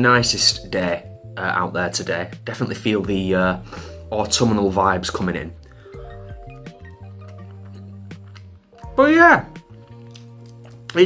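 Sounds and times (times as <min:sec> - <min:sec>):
calm background music: 0:00.0 - 0:11.0.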